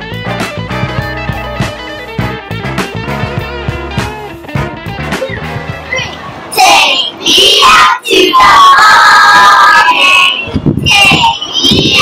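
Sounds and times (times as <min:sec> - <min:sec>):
children cheering: 0:07.6 - 0:10.4.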